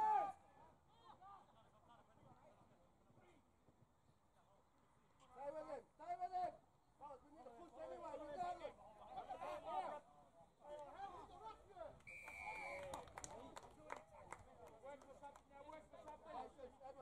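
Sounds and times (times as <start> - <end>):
high whistle: 12.0 - 12.9.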